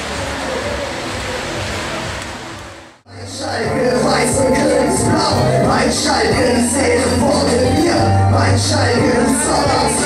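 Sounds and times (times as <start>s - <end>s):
street traffic hiss: 0.0s - 3.1s.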